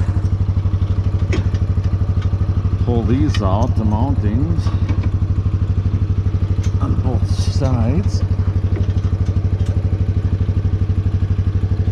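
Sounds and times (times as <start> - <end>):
atv engine idling: 0.0 - 11.9.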